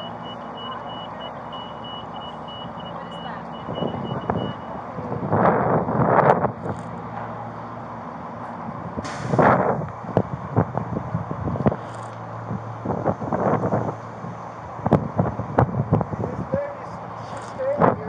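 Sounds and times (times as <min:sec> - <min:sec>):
vehicle warning beeper: 0:00.0 - 0:04.9.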